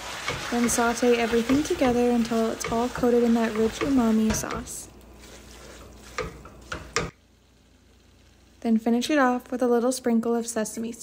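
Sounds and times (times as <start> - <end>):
faint sizzle: 0.0 - 11.0.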